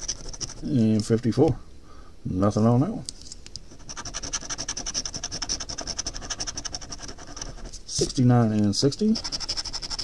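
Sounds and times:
coin scratching a lottery ticket: 0.0s - 0.8s, 3.7s - 8.1s, 9.1s - 10.0s.

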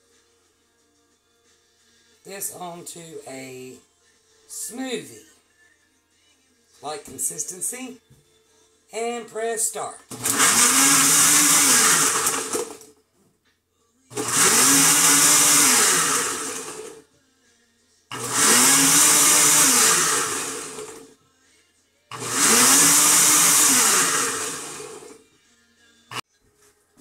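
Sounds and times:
blender motor pulsing: 10.1s - 12.9s, 14.1s - 17.0s, 18.1s - 21.1s, 22.1s - 25.2s.

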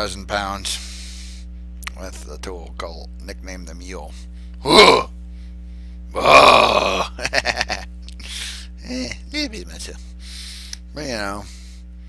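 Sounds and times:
person grunting: 4.6s - 5.1s, 6.2s - 7.2s.

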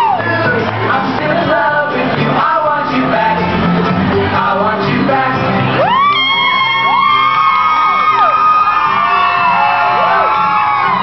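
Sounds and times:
audience whooping: 0.0s - 0.3s, 5.8s - 11.0s.

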